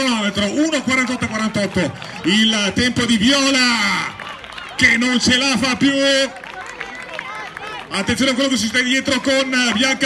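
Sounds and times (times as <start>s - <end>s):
man commentating: 0.0s - 6.5s, 7.6s - 10.0s.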